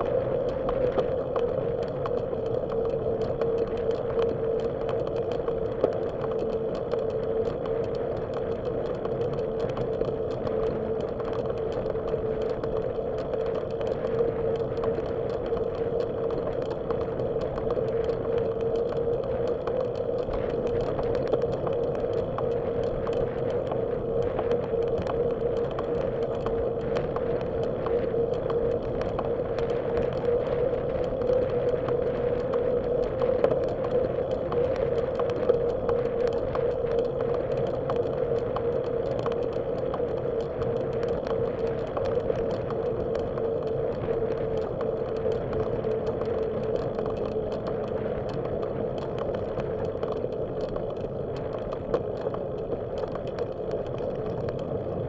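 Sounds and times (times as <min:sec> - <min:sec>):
bicycle rolling on pavement: 0:00.0 - 0:55.0
faint rattling ticks: 0:00.0 - 0:55.0.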